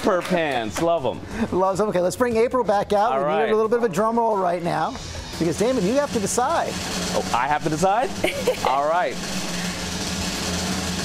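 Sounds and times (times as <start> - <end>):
drum roll: 5.4 - 11.0.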